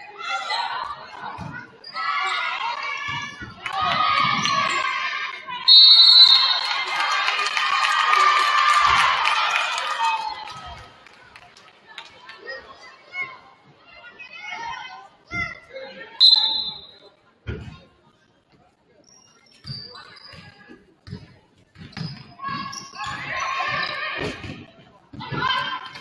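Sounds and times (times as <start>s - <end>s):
referee whistle: 5.7s - 6.8s, 16.2s - 17.1s.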